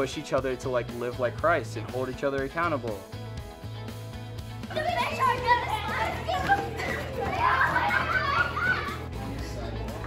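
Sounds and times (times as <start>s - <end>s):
background music with bass line: 0.0s - 10.0s
children chattering and shouting: 4.6s - 10.0s.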